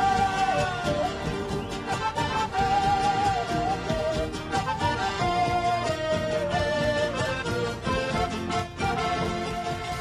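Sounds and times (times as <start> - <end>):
end-blown flute melody: 0.0 - 10.0
rhythmic accompaniment: 0.0 - 10.0.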